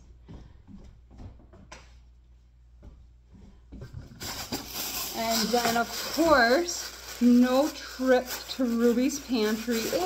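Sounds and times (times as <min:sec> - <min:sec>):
faint footsteps: 0:00.0 - 0:10.0
handling noises: 0:03.8 - 0:10.0.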